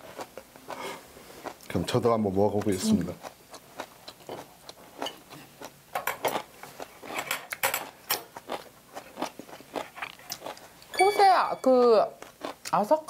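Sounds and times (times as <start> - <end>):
person chewing crunchy food: 0.0 - 1.9, 2.5 - 10.9, 12.2 - 12.7.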